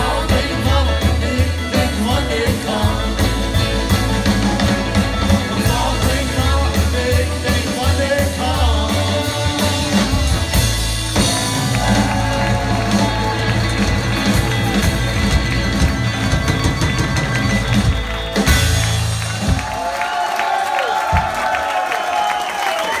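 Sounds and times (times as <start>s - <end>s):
live rock band playing: 0.0s - 20.1s
audience cheering: 9.5s - 23.0s.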